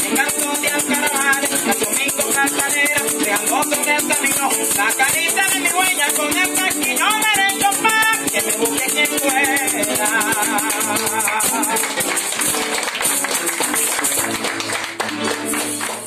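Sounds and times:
maracas shaking: 0.0s - 16.0s
plucked strings: 0.0s - 16.0s.

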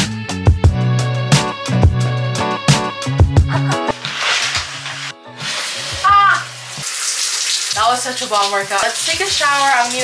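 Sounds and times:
background music: 0.0s - 7.2s
shower water spray hiss: 4.0s - 10.0s.

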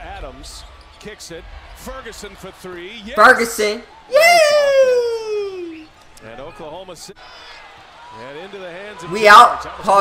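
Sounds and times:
excited shout falling in pitch: 4.1s - 5.9s.

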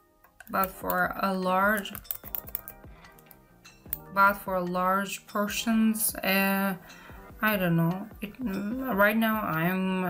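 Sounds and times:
faint background music: 0.0s - 10.0s
computer mouse and keyboard clicks: 1.8s - 3.3s.

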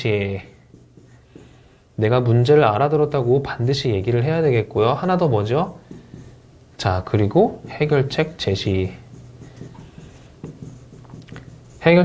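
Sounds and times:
pen writing on a screen: 0.0s - 6.4s, 7.2s - 12.0s.

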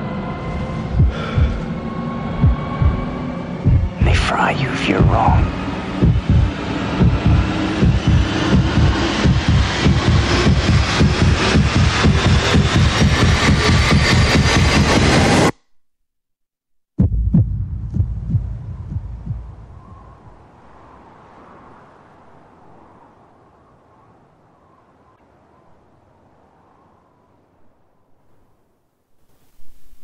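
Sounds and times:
heavy throbbing pulse: 0.0s - 15.6s, 17.0s - 20.3s.

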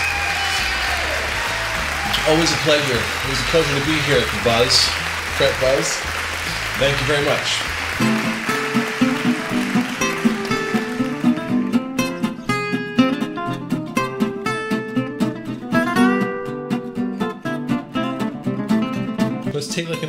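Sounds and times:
plucked guitar tune: 7.6s - 20.0s.

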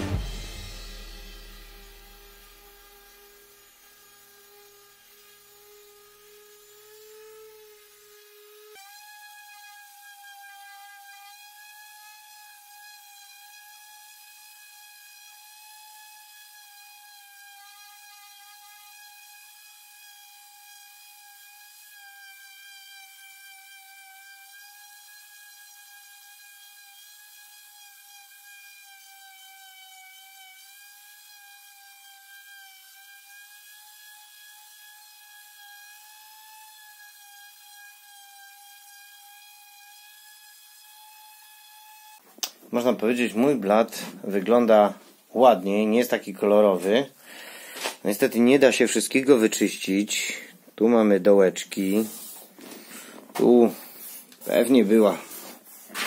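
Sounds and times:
orbital sander whining on wood: 0.0s - 47.0s.

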